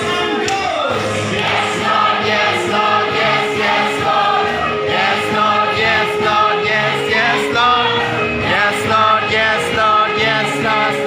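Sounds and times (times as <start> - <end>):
instrumental accompaniment: 0.0 - 11.0
congregation singing: 1.0 - 11.0.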